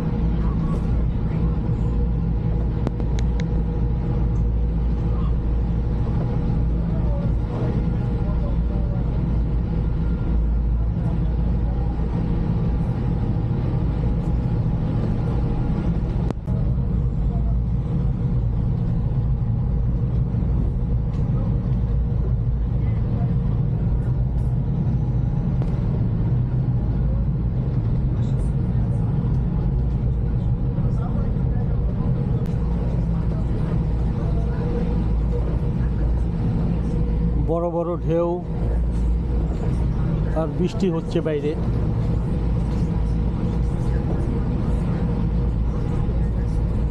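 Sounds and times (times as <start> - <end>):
ferry engines droning: 0.0 - 46.9.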